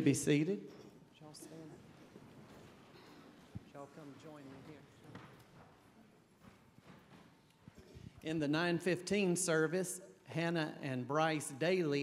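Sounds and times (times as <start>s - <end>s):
faint footsteps: 0.6s - 8.3s.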